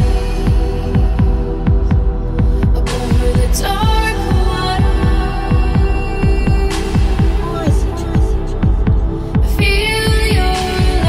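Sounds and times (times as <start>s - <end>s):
deep house dance music: 0.0s - 11.0s.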